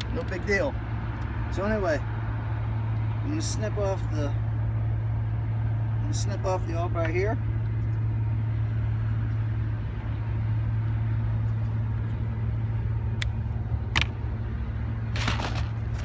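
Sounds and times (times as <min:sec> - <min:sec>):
steady low hum: 0:00.0 - 0:16.0
handling noise: 0:15.1 - 0:16.0.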